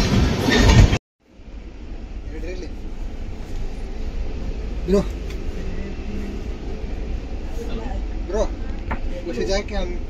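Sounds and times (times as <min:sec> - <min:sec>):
train coach rumble: 0:00.0 - 0:10.0
faint voices: 0:02.2 - 0:10.0.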